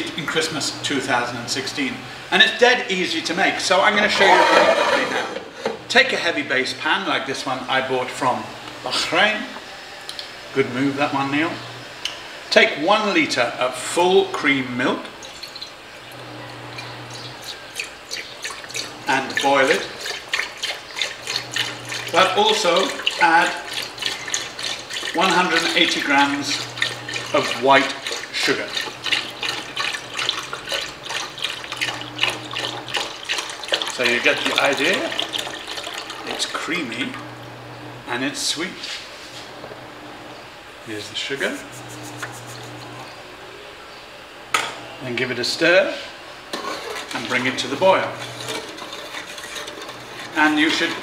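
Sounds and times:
milk pouring into a pan: 17.1s - 36.7s.

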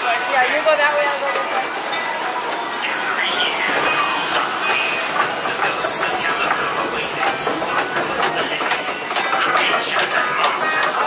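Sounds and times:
rushing water: 0.0s - 11.0s.

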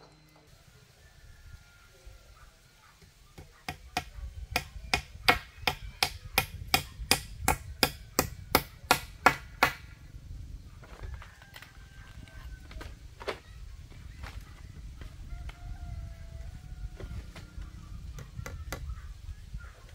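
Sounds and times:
hammer striking wood joint: 3.4s - 9.8s.

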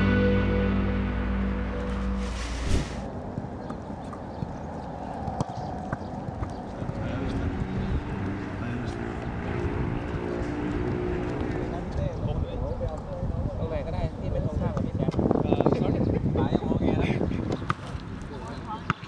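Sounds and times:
background music: 0.0s - 3.1s
faint indistinct voices: 3.3s - 19.0s.

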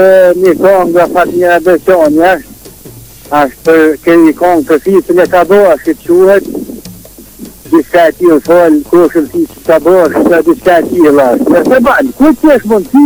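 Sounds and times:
person talking: 0.0s - 2.5s, 3.3s - 6.8s, 7.4s - 13.0s.

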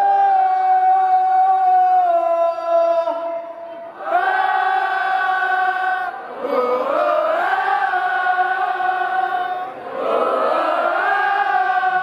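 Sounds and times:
audience singing wordless melody: 3.9s - 12.0s.

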